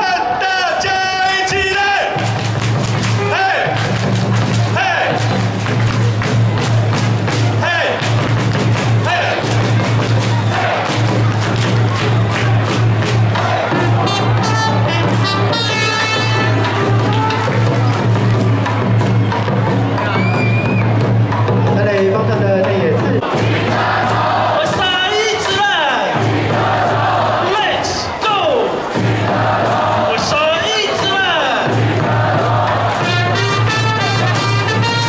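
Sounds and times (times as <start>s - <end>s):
crowd chanting and calling: 0.0s - 22.1s, 22.9s - 35.0s
amplified music with drumbeats: 1.5s - 35.0s.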